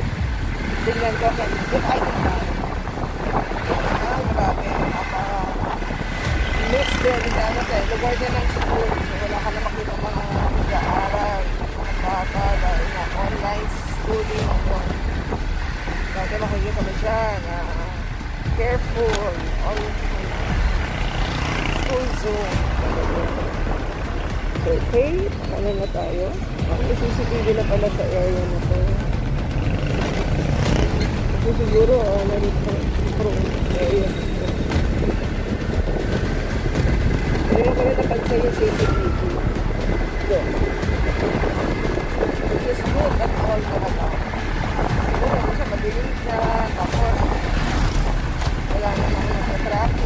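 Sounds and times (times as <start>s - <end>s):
motorcycle engine and tyre rumble: 0.0s - 50.0s
wind buffeting microphone: 0.0s - 50.0s.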